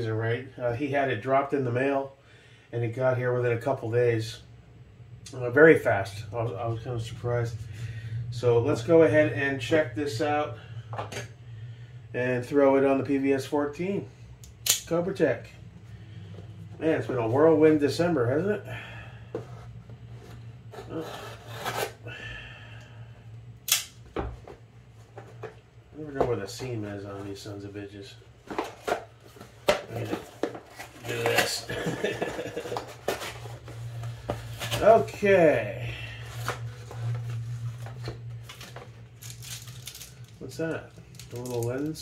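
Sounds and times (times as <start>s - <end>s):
low hum: 3.9s - 41.6s
paper mailer tearing and crinkling: 29.9s - 35.3s.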